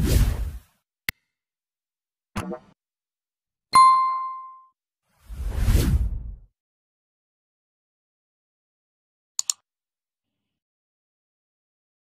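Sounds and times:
bright bell ding: 3.8 - 4.7
whoosh: 5.3 - 6.4.

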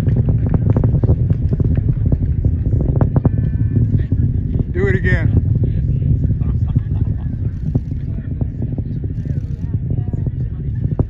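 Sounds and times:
rocket deep rumble with crackling: 0.0 - 11.0.

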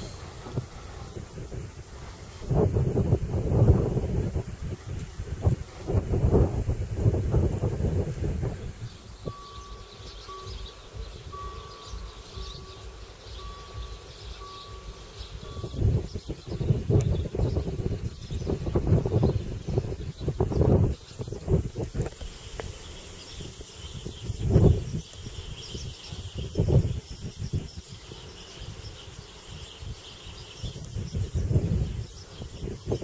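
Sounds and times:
wind buffeting microphone: 0.0 - 33.0
level crossing warning tone: 9.1 - 16.6.

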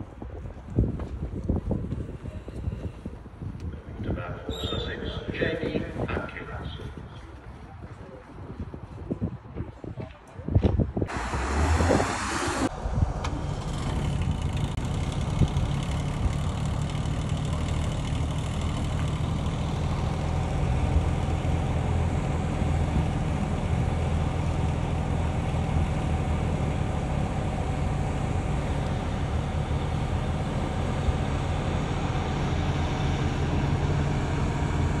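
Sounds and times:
coach engine idling: 12.6 - 35.0.

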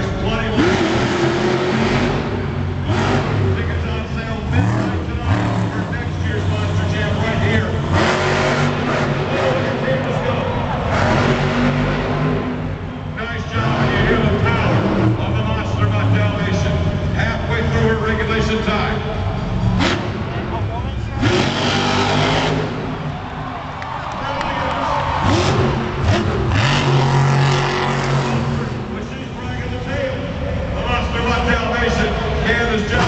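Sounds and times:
truck engine revving: 0.0 - 33.0.

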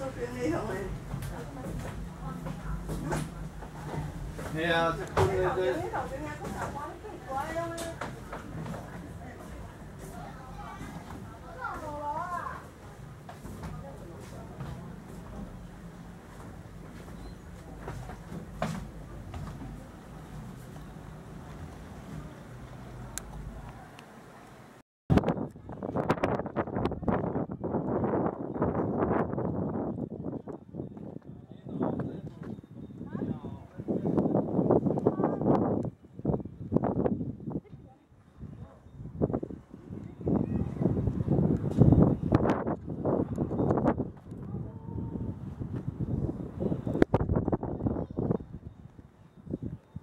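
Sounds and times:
faint outdoor background noise: 0.0 - 50.0
wind rumbling on microphone: 25.1 - 50.0.

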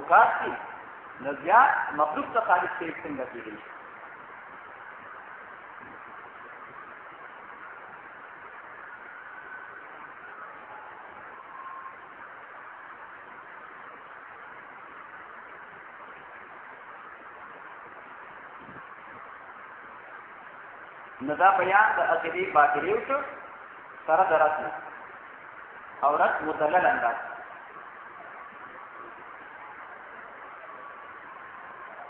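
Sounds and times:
steady background hiss: 0.0 - 32.0.

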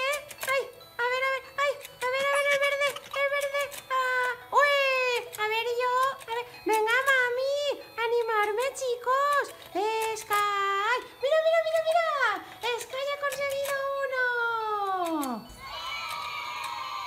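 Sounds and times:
toy game board clicking: 0.0 - 17.0.

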